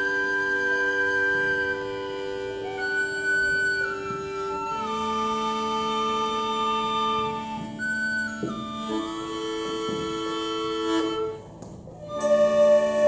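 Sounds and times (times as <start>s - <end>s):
flute long held notes: 0.0s - 13.0s
traditional music group playing: 0.0s - 13.0s.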